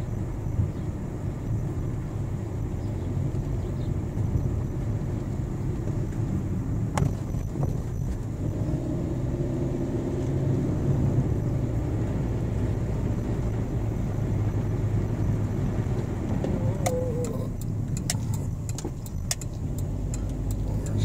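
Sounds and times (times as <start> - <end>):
car engine and tyre hum: 0.0 - 21.0
clicks and light rattles: 16.3 - 21.0.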